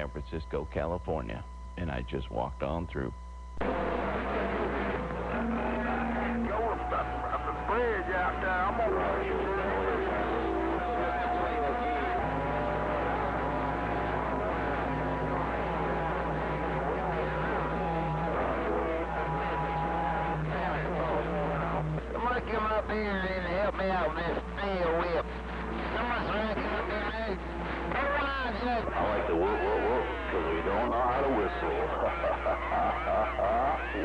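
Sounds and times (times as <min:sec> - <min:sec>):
garbled radio voices: 0:00.0 - 0:34.0
heterodyne tones: 0:00.0 - 0:34.0
low steady hum: 0:00.0 - 0:34.0.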